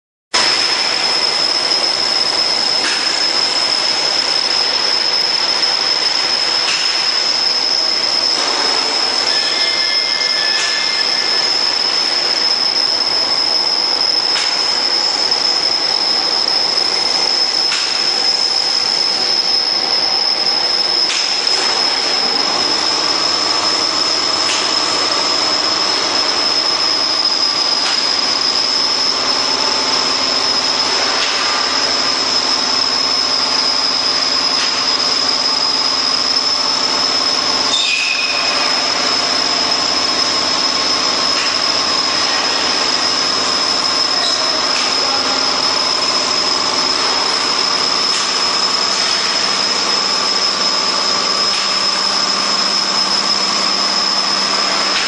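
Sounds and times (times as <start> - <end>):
laminating machine whirring: 0.4 - 55.0.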